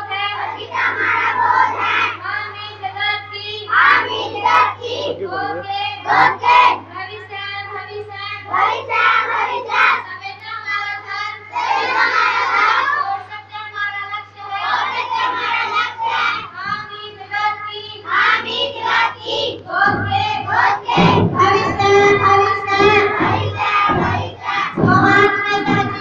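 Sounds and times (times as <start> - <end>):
girls singing over a pa: 0.0 - 26.0
steady low hum: 0.0 - 26.0.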